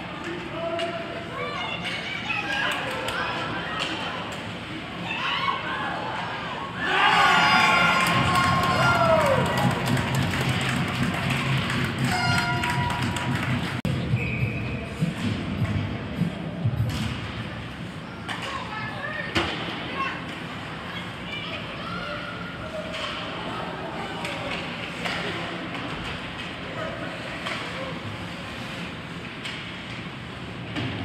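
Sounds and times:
spectators shouting: 6.8s - 10.0s
hockey sticks and puck clacking: 8.0s - 13.8s, 24.2s - 26.8s, 27.4s - 28.0s.

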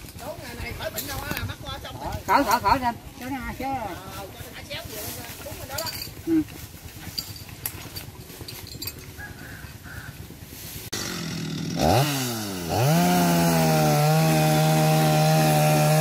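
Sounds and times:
chainsaw engine idling and revving: 0.0s - 16.0s
outdoor background noise: 0.0s - 16.0s.

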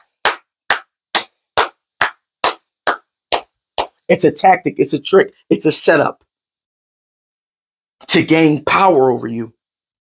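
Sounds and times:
person clapping hands: 0.0s - 4.0s.

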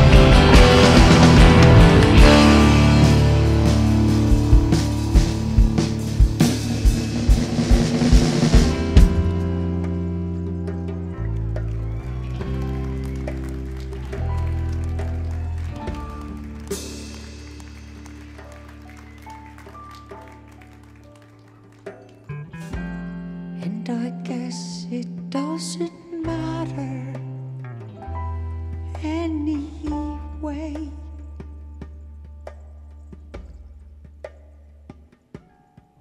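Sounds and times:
drums and cymbals pounding: 0.0s - 23.4s
held bass and chord notes: 0.0s - 33.4s.

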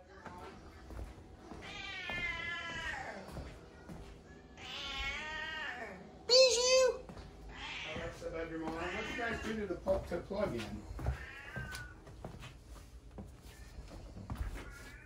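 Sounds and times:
cat meowing: 1.5s - 3.2s, 4.6s - 9.6s, 11.0s - 12.0s.

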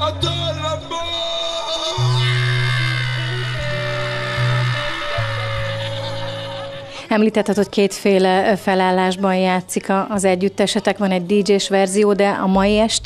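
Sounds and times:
crowd shouting: 0.8s - 7.0s.

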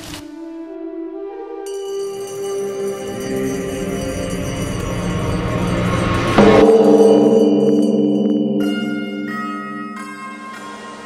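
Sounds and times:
large bell ringing: 1.7s - 11.0s.

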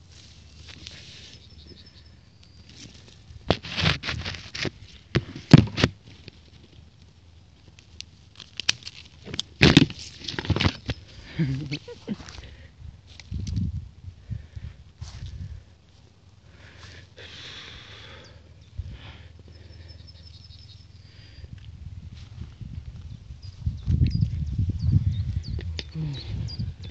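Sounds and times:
grass and leaves rustling: 0.0s - 26.9s
faint bird chirp: 0.8s - 3.2s, 17.8s - 21.6s, 23.0s - 26.9s
microphone handling rumble: 9.4s - 15.7s, 21.4s - 26.9s.

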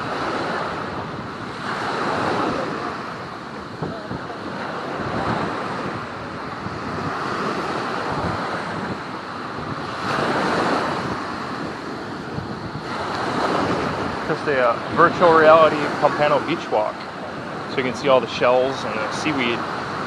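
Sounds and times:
surf breaking on beach: 0.0s - 20.0s
wind buffeting microphone: 0.0s - 20.0s.

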